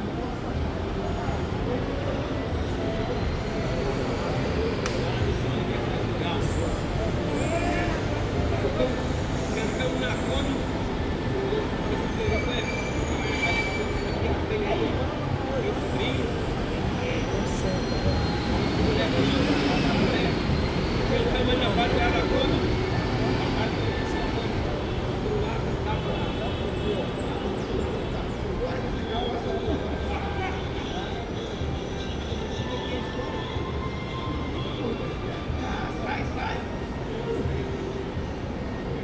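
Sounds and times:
city traffic rumble: 0.0 - 39.0
faint voices: 0.0 - 39.0
high drawn-out squeal: 12.2 - 14.4.

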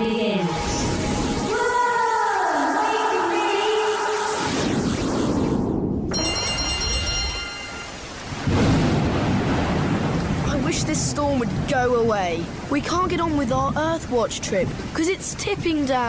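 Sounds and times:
heavy rain: 0.0 - 16.0
electronic sci-fi jingle: 6.1 - 8.2
thunder: 8.4 - 12.6.

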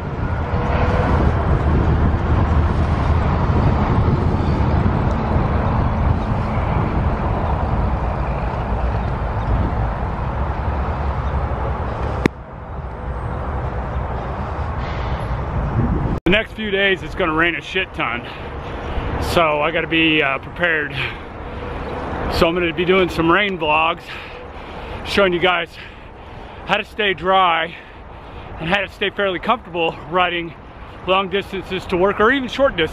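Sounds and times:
bicycle tyres on pavement: 0.0 - 15.3
wind on microphone: 0.0 - 17.2.

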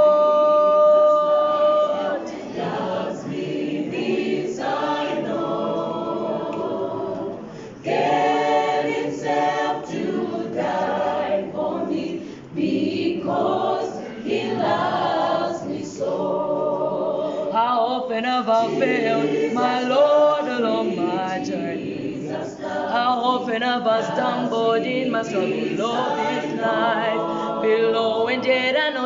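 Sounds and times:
choir singing a cappella: 0.0 - 29.0.

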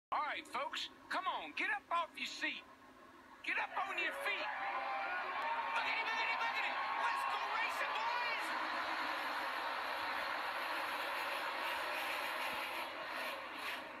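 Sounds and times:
excited shouting: 3.5 - 10.6.

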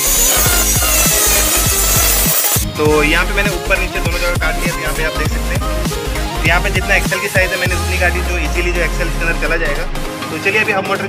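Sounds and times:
angle grinder cutting steel: 0.0 - 2.8
music with fast bass beat: 0.0 - 11.0.

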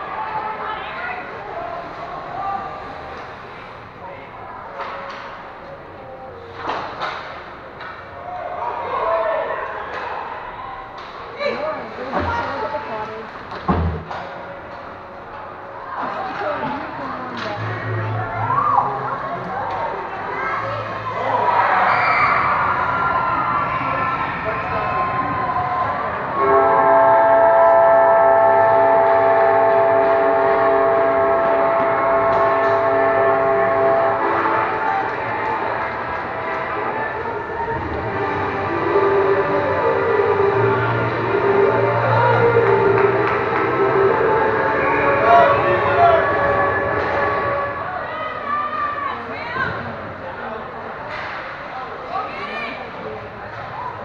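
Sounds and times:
spectators' voices: 0.0 - 54.0
arena horn: 26.3 - 49.0.

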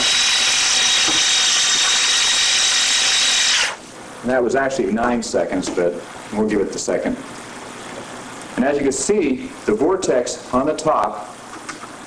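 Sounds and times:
electric drill mixing paint: 0.0 - 3.8.

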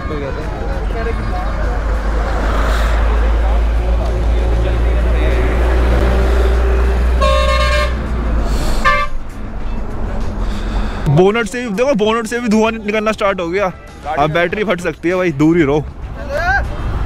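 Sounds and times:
low rumble of traffic: 0.0 - 17.0
vehicle horn honking: 7.1 - 8.1, 8.8 - 9.3.

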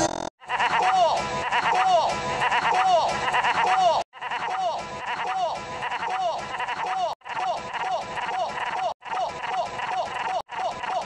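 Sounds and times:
high-pitched cartoon voice laughing: 0.4 - 11.0.

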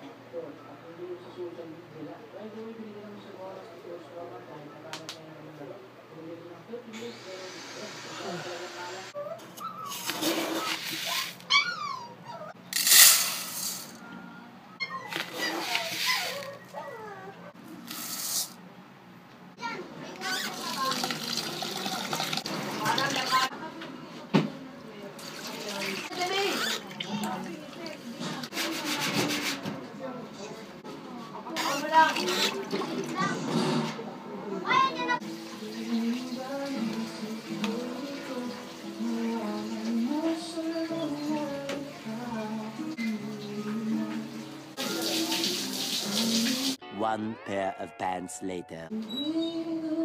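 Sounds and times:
rice pouring into metal pot: 12.8 - 13.8.

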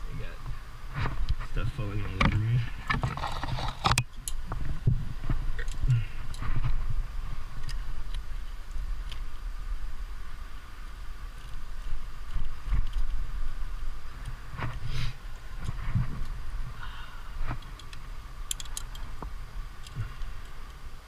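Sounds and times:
low wind rumble: 0.0 - 21.0
hands scraping on rock: 2.7 - 4.0
metal climbing gear clinking: 17.6 - 20.8.

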